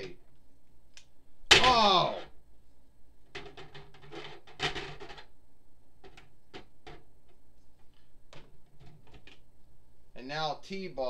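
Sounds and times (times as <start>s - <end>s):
person exclaiming: 1.5s - 2.3s.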